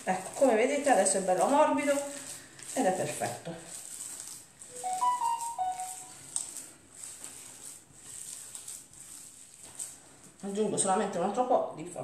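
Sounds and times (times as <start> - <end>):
wet squishing of meat mixture: 0.0 - 4.7, 6.1 - 10.6.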